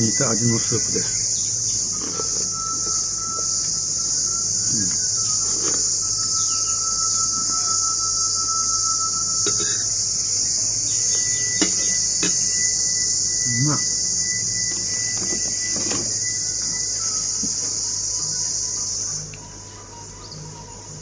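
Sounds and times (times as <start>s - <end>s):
insects droning: 0.0s - 21.0s
thin steady tone: 0.0s - 21.0s.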